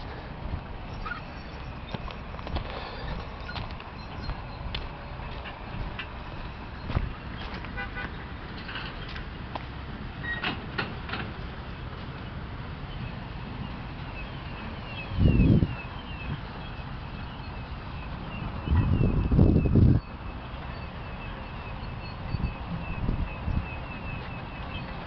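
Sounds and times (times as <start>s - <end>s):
steady low rumble: 0.0s - 7.5s
footsteps on sand and gravel: 1.9s - 8.2s.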